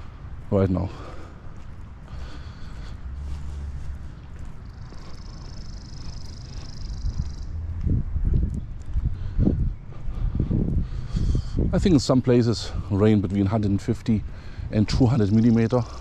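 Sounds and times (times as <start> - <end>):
footsteps on wet pavement: 0.0 - 16.0
wind rumbling on microphone: 0.0 - 16.0
songbird trill: 3.7 - 8.9, 14.8 - 16.0.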